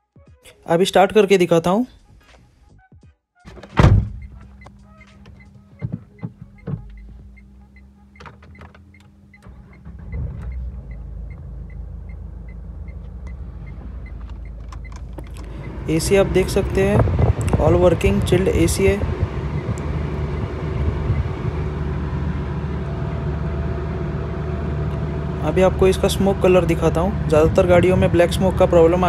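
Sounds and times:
diesel engine starting and idling: 3.5s - 29.0s.

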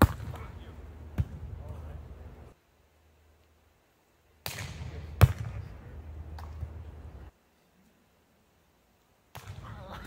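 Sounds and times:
volleyball being hit: 0.0s - 0.5s, 4.4s - 5.6s
low rumbling outdoor noise: 0.0s - 10.0s.

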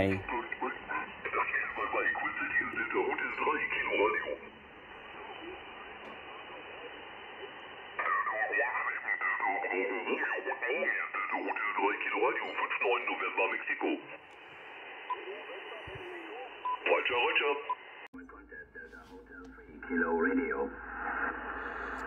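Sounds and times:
radio band hiss: 0.0s - 22.0s
radio voice through speaker: 0.0s - 22.0s.

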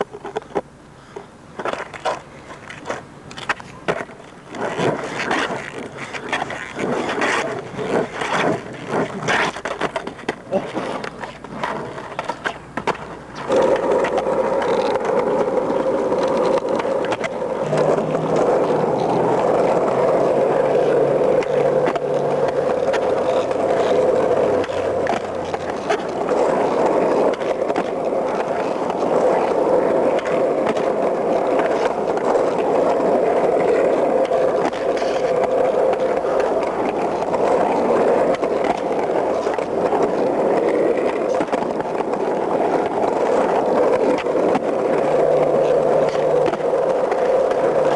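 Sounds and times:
skateboard clicks: 0.0s - 47.9s
skateboard wheels rolling on asphalt: 0.0s - 47.9s.

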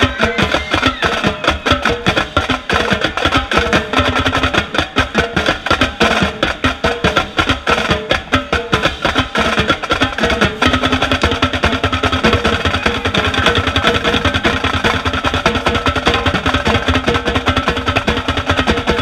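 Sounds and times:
marching drumline cadence: 0.0s - 19.0s
tenor drums rapid strokes: 0.0s - 19.0s.

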